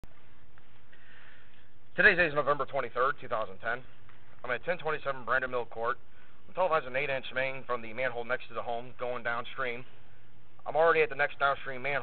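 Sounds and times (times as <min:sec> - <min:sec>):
faint electrical hum: 0:00.0 - 0:12.0
low background hiss: 0:00.1 - 0:12.0.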